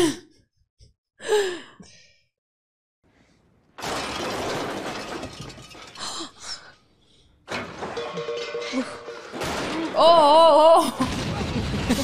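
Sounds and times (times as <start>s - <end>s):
loud crash: 3.8s - 6.6s, 7.5s - 10.2s, 11.0s - 12.0s.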